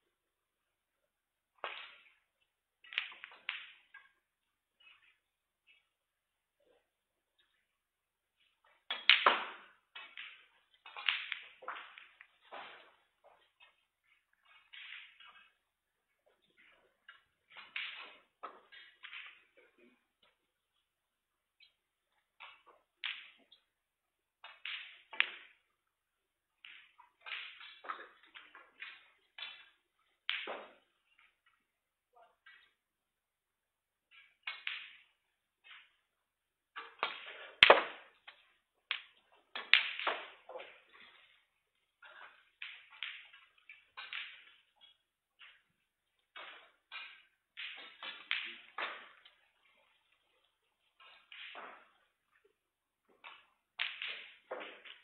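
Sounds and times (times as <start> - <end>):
snooker balls knocking: 8.6 - 20.7, 21.6 - 23.7, 24.4 - 25.7, 26.6 - 31.6, 36.7 - 49.6, 50.9 - 55.0.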